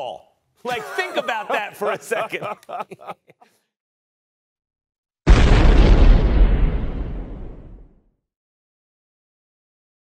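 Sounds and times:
boom with deep rumble: 5.3s - 8.0s.

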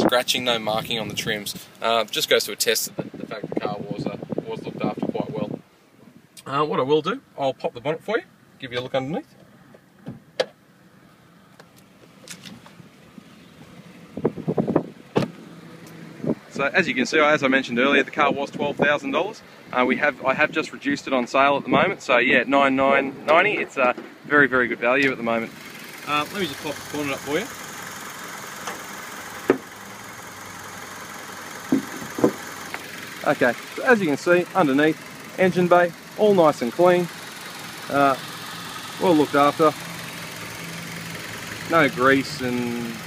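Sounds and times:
car engine idling faintly: 0.0s - 43.0s
car door shutting: 9.4s - 10.6s, 14.2s - 16.4s, 28.6s - 29.7s, 31.7s - 32.8s.

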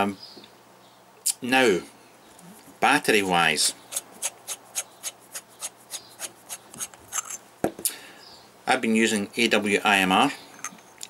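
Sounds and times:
metal cap unscrewing rasp: 3.9s - 7.4s.

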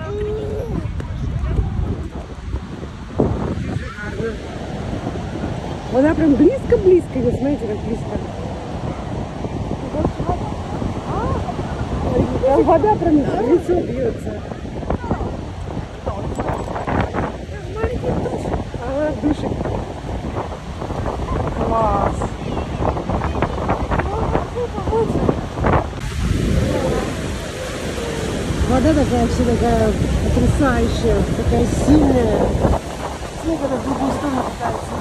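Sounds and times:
rush of water falls: 0.0s - 35.0s
wind buffeting microphone: 0.0s - 35.0s.

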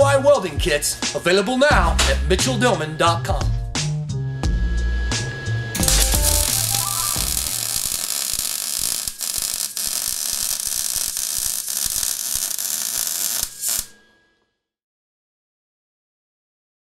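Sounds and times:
welding arc crackling hiss: 5.8s - 14.0s.

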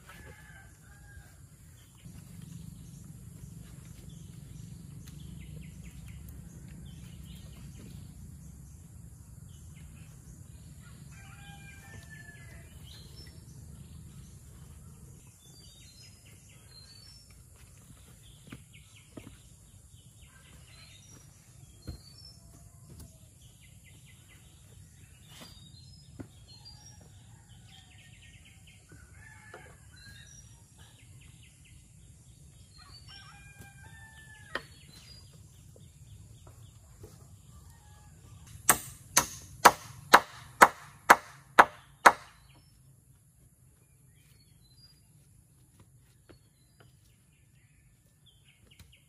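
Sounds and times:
hammer blows on timber: 38.7s - 42.4s
wooden poles knocking: 38.7s - 42.5s.

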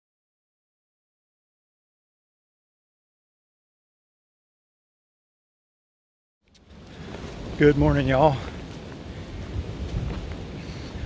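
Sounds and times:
wind buffeting microphone: 6.7s - 11.0s.

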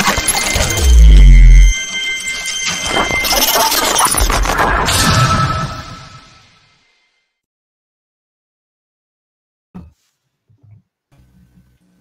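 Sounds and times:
thin high ringing tone: 0.0s - 4.2s
deep bass boom: 0.6s - 1.7s.

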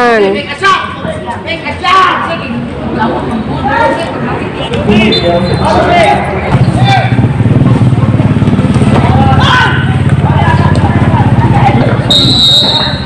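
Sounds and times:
voices shouting: 0.6s - 7.4s, 8.2s - 13.0s
referee's whistle: 5.0s - 5.8s, 12.0s - 13.0s
vehicle engine running: 5.7s - 13.0s.

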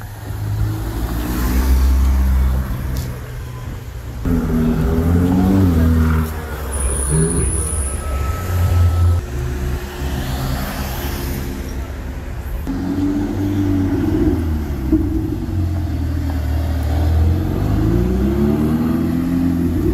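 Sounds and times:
street traffic noise: 0.0s - 19.9s
sports car engines accelerating: 4.2s - 11.0s, 12.6s - 19.9s.

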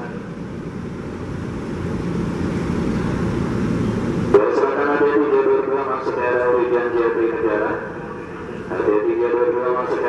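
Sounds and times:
locomotive engine rumbling: 0.0s - 10.0s.

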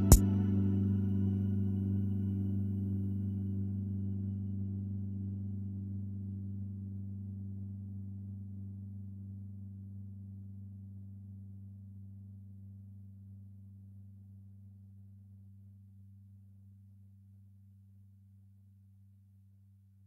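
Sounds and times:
low synthesizer note ringing: 0.0s - 10.0s.

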